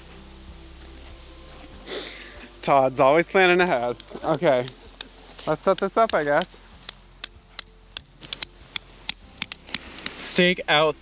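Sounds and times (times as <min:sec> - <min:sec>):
hammer tapping tent stake: 0:03.6 - 0:10.2.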